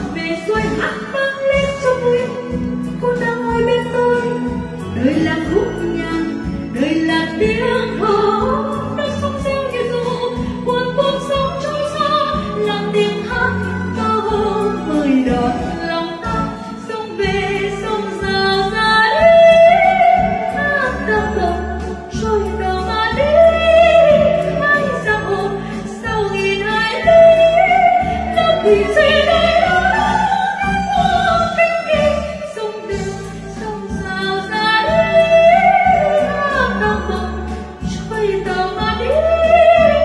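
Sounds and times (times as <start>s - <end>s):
instrumental accompaniment: 0.0s - 40.0s
woman singing into microphone: 0.0s - 40.0s.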